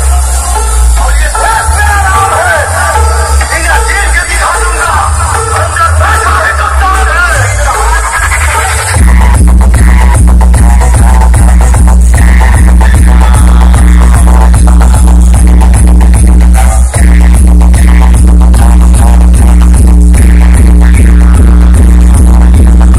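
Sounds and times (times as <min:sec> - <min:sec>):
loud electronic dance music: 0:00.0 - 0:22.9.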